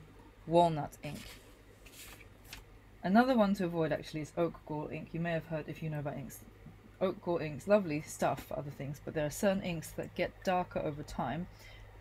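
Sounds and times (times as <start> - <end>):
paper scraping on wooden table: 1.1 - 2.6
paper rustling: 1.1 - 2.7.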